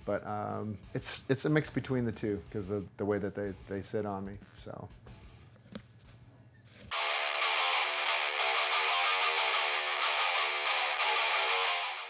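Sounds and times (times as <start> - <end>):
distorted electric guitar: 6.9 - 12.0.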